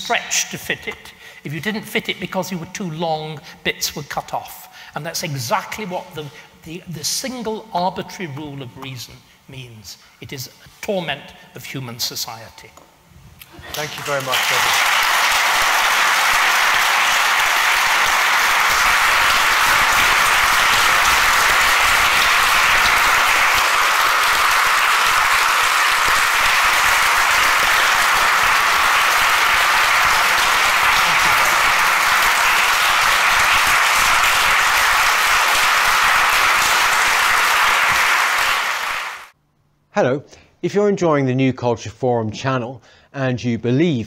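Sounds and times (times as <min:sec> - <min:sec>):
audience applauding: 0:13.5 - 0:39.3.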